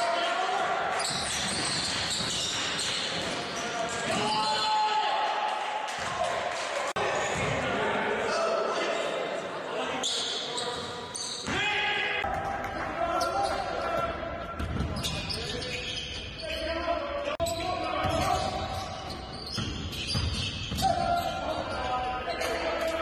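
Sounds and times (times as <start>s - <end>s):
players' voices echoing: 0.0s - 23.0s
basketball bouncing on wooden court: 1.2s - 3.4s, 18.0s - 21.3s.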